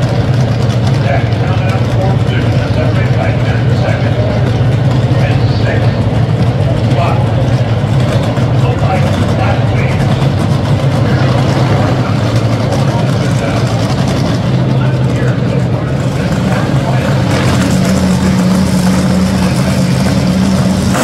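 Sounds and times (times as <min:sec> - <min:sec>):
dragster engines idling: 0:00.0 - 0:21.0
higher steady engine note: 0:00.0 - 0:21.0.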